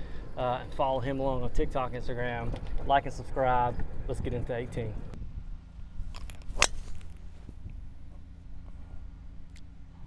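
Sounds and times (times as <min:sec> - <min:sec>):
low steady rumble: 0:00.0 - 0:10.0
golf club striking ball: 0:06.1 - 0:07.2.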